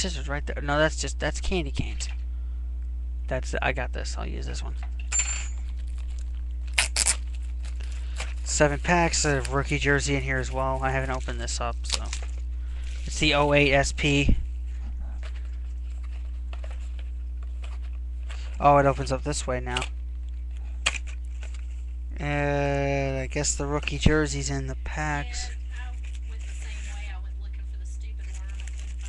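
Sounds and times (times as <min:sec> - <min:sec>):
steady low hum: 0:00.0 - 0:29.0
plastic wrap tearing: 0:05.7 - 0:09.7, 0:10.9 - 0:13.2, 0:28.2 - 0:29.0.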